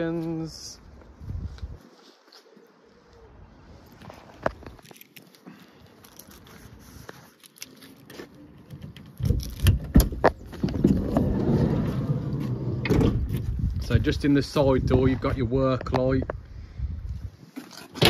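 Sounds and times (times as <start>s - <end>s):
sliding door rolling open: 10.6s - 13.5s.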